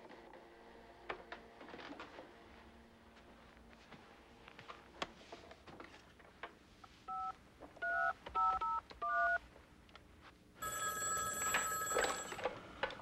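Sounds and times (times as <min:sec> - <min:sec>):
touch-tone dialing beeps: 0:07.1 - 0:09.4, 0:10.6 - 0:12.5
telephone bell ringing: 0:10.6 - 0:12.6.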